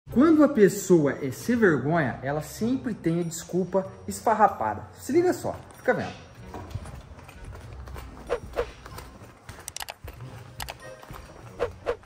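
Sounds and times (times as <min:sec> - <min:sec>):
bare feet walking on tiles: 0:06.4 - 0:12.0.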